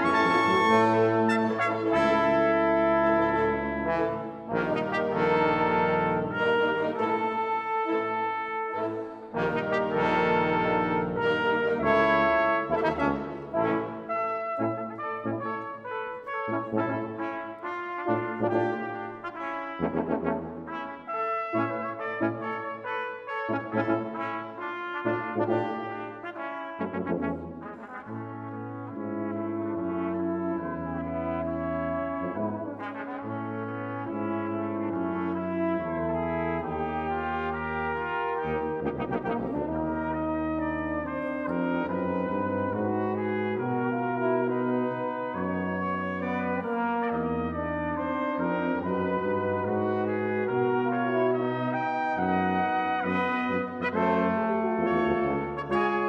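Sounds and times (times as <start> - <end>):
brass quintet with wind band: 0.0 - 56.0.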